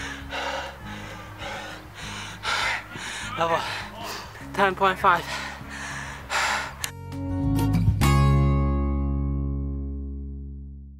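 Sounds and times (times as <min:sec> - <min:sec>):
man gasping for breath: 0:00.0 - 0:04.5, 0:05.2 - 0:06.9
background music with low notes: 0:00.0 - 0:10.9.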